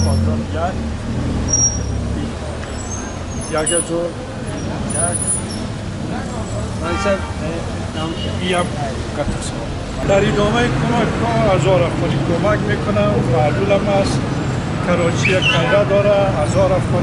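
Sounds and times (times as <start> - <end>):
street traffic: 0.0 - 17.0.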